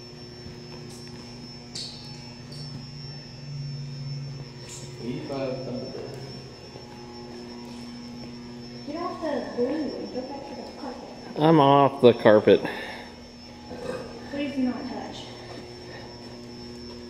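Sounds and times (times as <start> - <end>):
low electrical hum: 0.0 - 17.0
thin high-pitched whine: 0.0 - 17.0.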